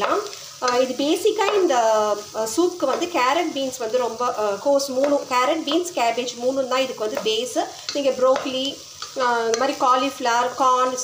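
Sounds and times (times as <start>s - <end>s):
vegetables sizzling in a pan: 0.0s - 11.0s
spatula scraping a pan: 7.1s - 9.8s.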